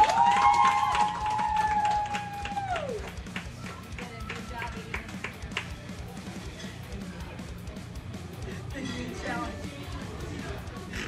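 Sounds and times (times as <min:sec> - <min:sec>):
music with tapping beat: 0:00.2 - 0:11.0.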